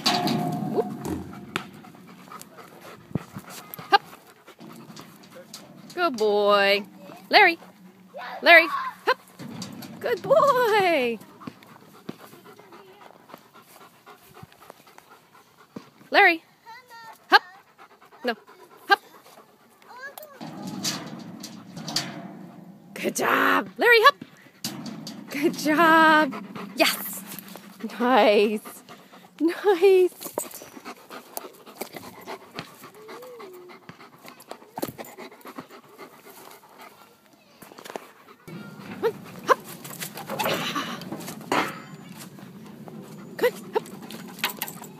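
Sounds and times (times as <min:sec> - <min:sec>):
dog panting: 0:01.1 - 0:08.1, 0:11.2 - 0:16.1, 0:16.7 - 0:20.4, 0:24.3 - 0:37.2, 0:38.0 - 0:44.9.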